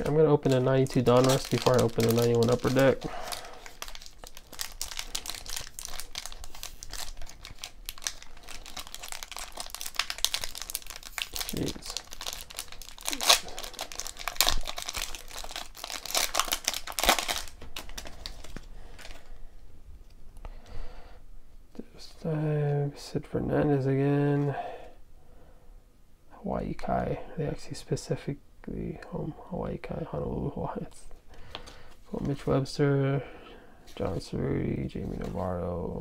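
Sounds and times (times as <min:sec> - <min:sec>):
wrapper crinkling and tearing: 0:00.0 - 0:19.4.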